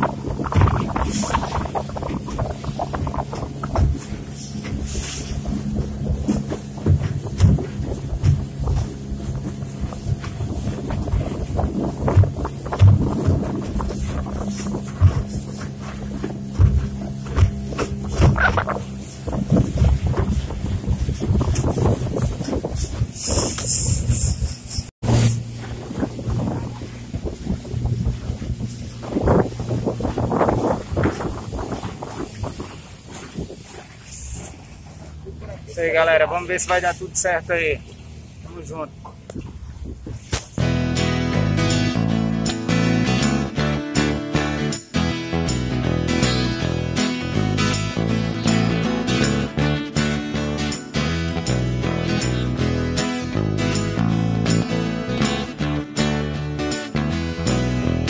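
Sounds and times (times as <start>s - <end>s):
wind buffeting microphone: 0.0s - 43.7s
outboard motor running: 0.0s - 58.0s
irregular knocks: 12.0s - 18.8s
music: 40.6s - 58.0s.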